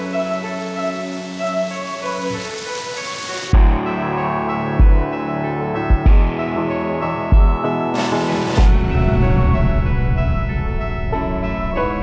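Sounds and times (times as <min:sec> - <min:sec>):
rain-like hiss: 0:00.0 - 0:03.6, 0:08.0 - 0:09.0
deep bass hit: 0:08.6 - 0:12.0.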